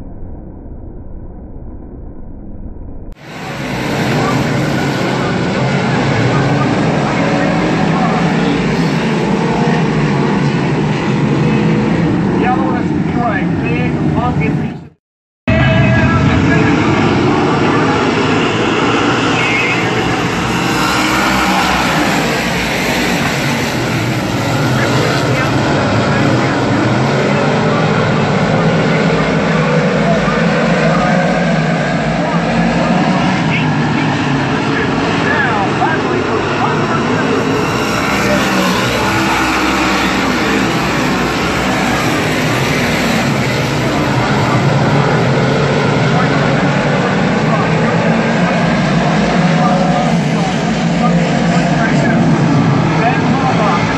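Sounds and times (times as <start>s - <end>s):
race car engines passing: 3.2s - 14.6s, 15.6s - 53.9s.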